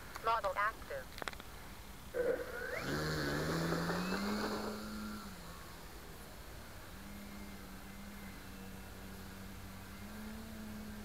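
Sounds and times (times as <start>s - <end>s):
model plane motor and propeller: 2.5s - 11.0s.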